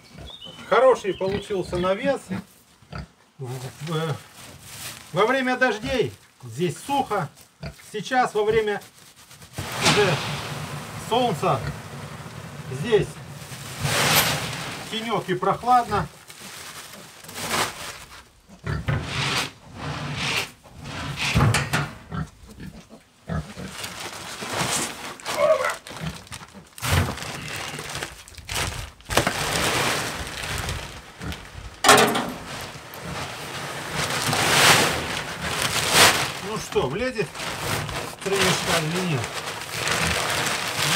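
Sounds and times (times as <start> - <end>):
dry feed pouring into bin: 9.6 - 16.1, 28.7 - 31.2, 31.9 - 40.9
pigs grunting: 18.5 - 19.1, 22.1 - 23.8.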